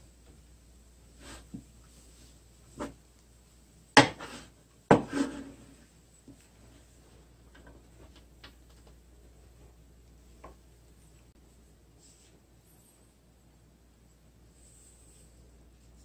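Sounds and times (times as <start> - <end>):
wooden spatula knocking on pan: 4.9 - 5.2.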